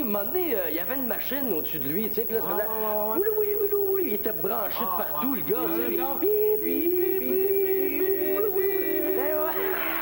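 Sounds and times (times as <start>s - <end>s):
man singing long note: 5.6s - 10.0s.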